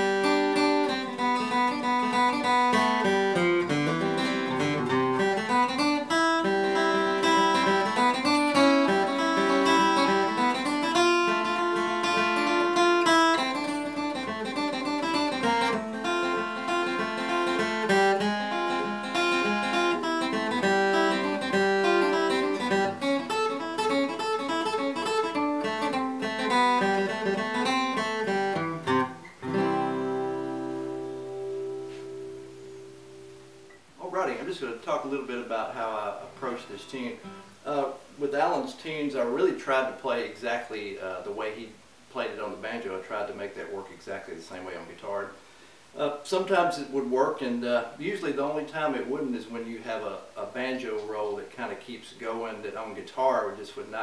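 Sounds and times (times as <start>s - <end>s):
acoustic guitar flatpicking: 0.0s - 34.4s, 35.5s - 37.7s.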